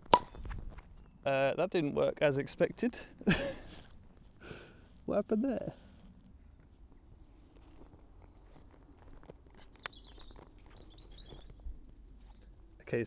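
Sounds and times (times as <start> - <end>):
bird chirping: 0.1 - 1.6, 6.0 - 13.0
footsteps through grass and leaves: 6.6 - 12.4.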